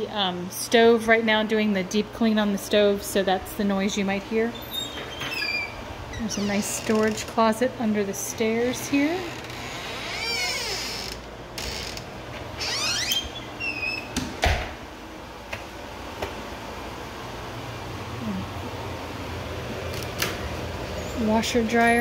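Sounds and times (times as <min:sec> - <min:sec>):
oven humming: 0:00.0 - 0:22.0
wooden door creaking: 0:04.6 - 0:07.4, 0:08.8 - 0:14.6
door thump: 0:14.2 - 0:14.8.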